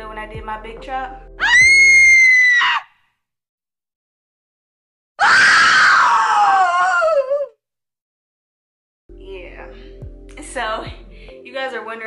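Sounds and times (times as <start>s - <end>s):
high-pitched human screams: 1.4s - 2.9s, 5.2s - 7.6s.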